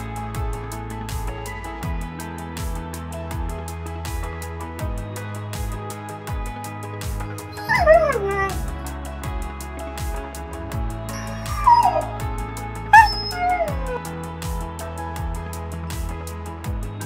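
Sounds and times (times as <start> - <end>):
background music with steady beat: 0.0 - 17.0
dog whining: 7.4 - 8.7, 11.2 - 12.2, 12.9 - 14.0.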